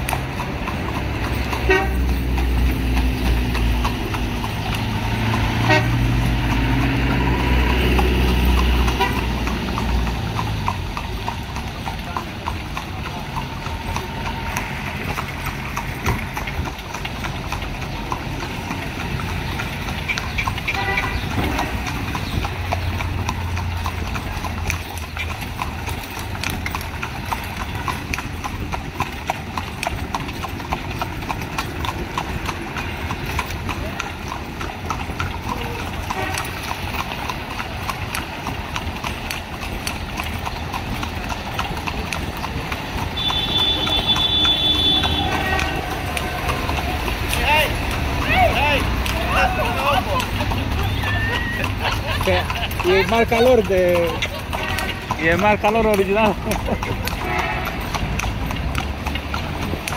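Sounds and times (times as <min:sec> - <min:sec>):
horse hooves clip-clopping on pavement: 0:00.0 - 0:59.9.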